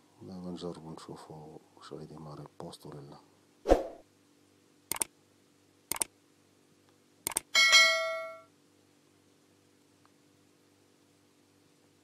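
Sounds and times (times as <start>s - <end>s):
mouse clicks: 4.9s - 5.1s, 5.9s - 6.1s, 7.2s - 7.5s
bell-like notification ding: 7.6s - 8.4s.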